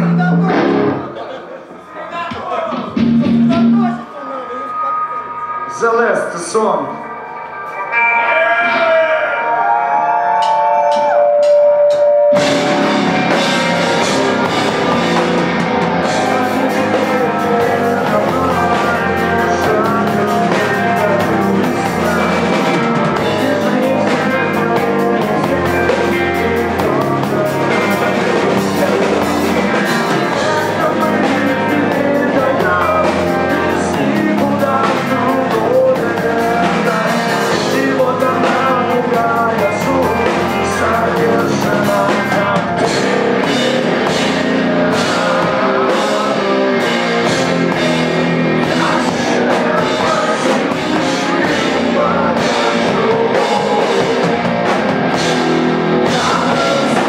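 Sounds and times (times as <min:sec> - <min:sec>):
rock band playing: 0:00.0 - 0:57.0
singer's vocals: 0:00.0 - 0:57.0.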